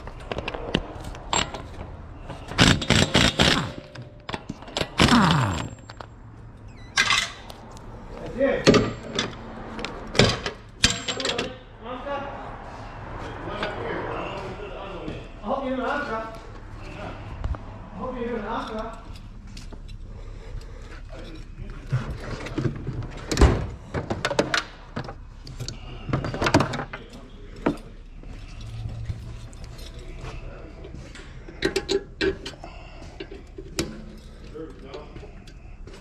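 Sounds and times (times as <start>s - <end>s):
tools and metal parts clanking: 0.0s - 7.6s, 8.6s - 11.6s, 18.6s - 35.8s
indistinct voice: 5.0s - 5.8s.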